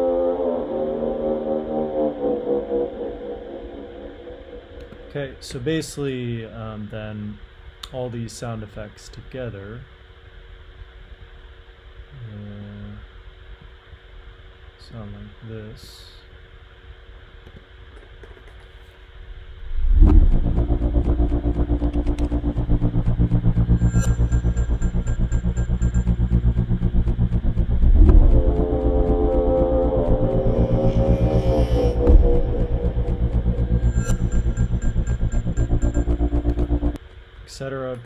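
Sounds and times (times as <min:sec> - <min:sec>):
processed field recordings: 0:18.0 - 0:38.0
pitched airplane drone: 0:19.6 - 0:37.0
rising tones: 0:19.6 - 0:37.0.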